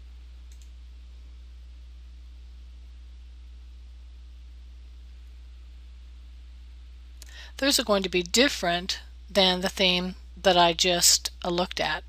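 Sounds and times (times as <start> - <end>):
steady low hum: 0.0 - 12.0
faint computer mouse click: 0.5 - 0.8.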